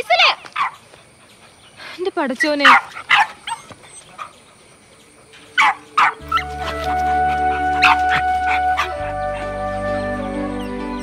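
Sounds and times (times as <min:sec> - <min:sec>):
puppy yapping: 0:02.4 - 0:04.4, 0:05.6 - 0:09.4
soft music with low drone: 0:05.3 - 0:11.0.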